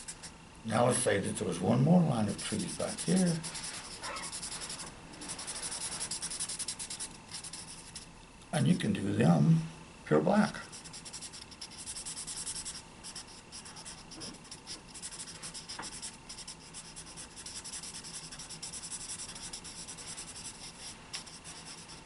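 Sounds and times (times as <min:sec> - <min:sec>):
marker scratching on paper: 0:02.3 - 0:08.1, 0:10.7 - 0:22.0.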